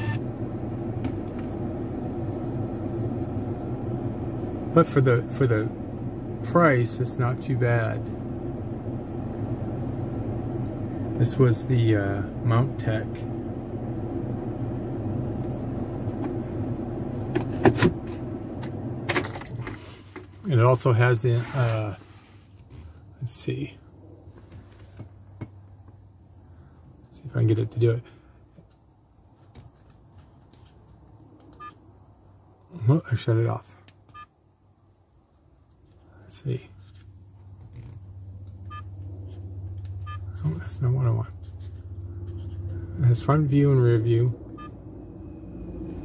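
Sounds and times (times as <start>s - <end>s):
short electronic beep: 0.0s - 0.2s
car engine idling: 0.0s - 21.2s, 36.0s - 46.0s.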